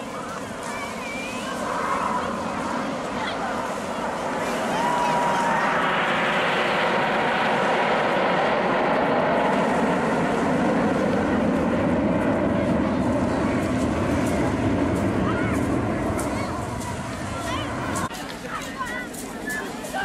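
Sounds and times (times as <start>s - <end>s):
jets flying past: 0.0s - 18.2s.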